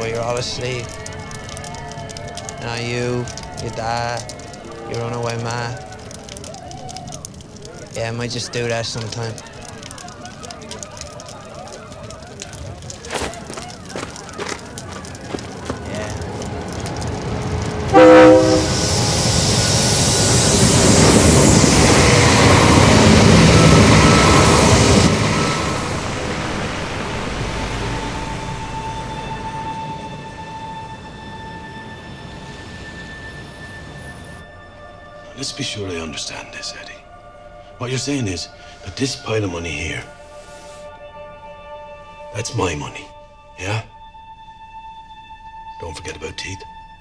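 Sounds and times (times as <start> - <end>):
train rushing rumble: 0.0 - 34.6
train horn blast: 17.6 - 20.4.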